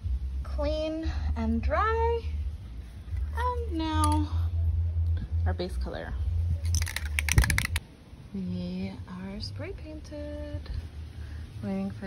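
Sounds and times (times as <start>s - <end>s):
steady low rumble: 0.0s - 12.0s
spray paint can rattling: 6.6s - 7.8s.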